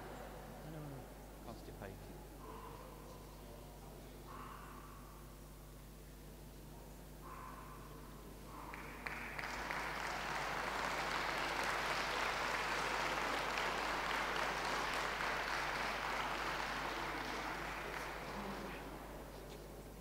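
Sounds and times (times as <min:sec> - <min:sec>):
audience applauding: 0:08.6 - 0:19.3.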